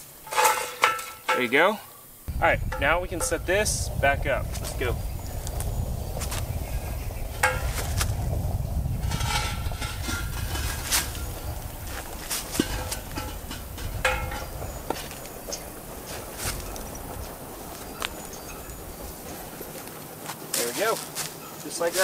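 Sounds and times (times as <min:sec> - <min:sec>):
knocks and scrapes of metal fixture: 0:00.2 - 0:01.6, 0:02.6 - 0:03.7, 0:07.3 - 0:08.2, 0:08.9 - 0:15.3
steady low rumble: 0:02.3 - 0:19.7.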